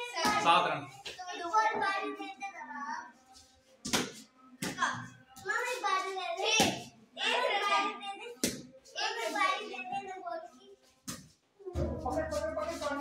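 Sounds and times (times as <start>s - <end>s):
children shouting and talking: 0.0s - 3.2s, 4.8s - 10.8s.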